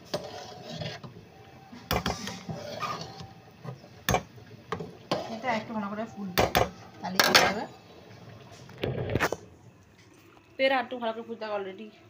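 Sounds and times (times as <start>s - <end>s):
metal spoon stirring a pot: 0.0s - 7.8s
spoon knocking against metal pan: 6.4s - 7.5s.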